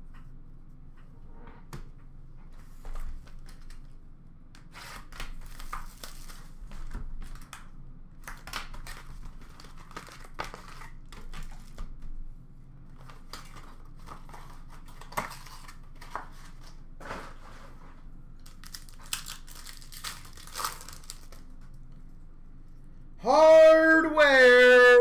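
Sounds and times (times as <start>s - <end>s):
plastic wrap crinkling and tearing: 5.0s - 6.6s, 8.2s - 11.8s, 18.4s - 21.6s.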